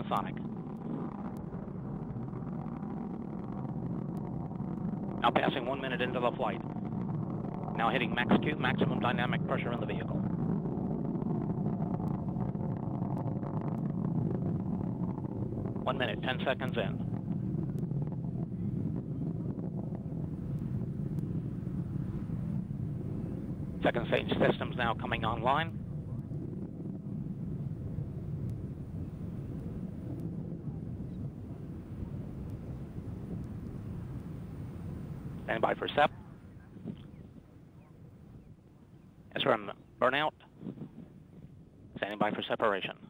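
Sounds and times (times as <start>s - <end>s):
distant rocket engine rumble: 0.0s - 43.0s.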